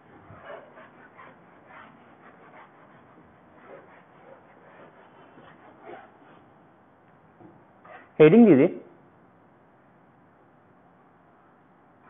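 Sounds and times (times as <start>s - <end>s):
whiteboard eraser wiping: 0.0s - 6.6s.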